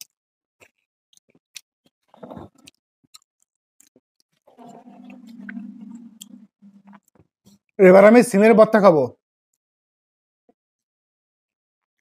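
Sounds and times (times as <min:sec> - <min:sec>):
man chewing food: 0:00.6 - 0:07.6
low steady hum: 0:04.6 - 0:07.0.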